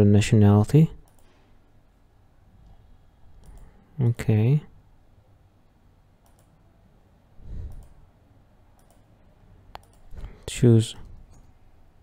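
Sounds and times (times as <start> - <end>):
faint mouse clicks: 1.0 - 1.4, 3.4 - 3.7, 6.2 - 6.6, 7.7 - 8.0, 8.7 - 9.1, 9.7 - 10.2.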